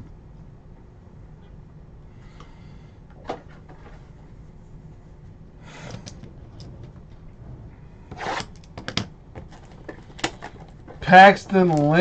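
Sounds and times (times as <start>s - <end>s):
plastic crackling and clicking: 9.4s - 12.0s.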